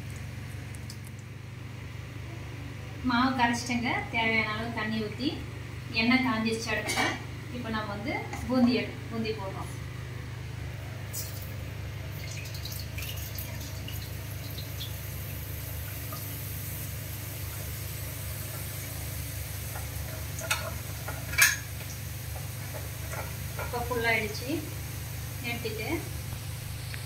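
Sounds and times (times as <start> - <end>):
batter sizzling in hot oil: 11.1 - 27.0.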